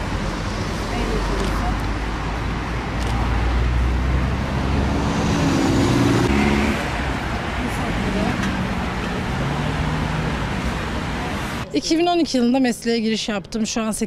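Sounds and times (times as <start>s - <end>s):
road traffic rumble: 0.0s - 14.0s.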